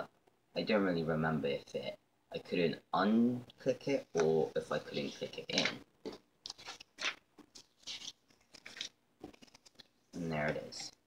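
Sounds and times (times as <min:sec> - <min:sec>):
paper packaging rustling: 0:04.0 - 0:10.7.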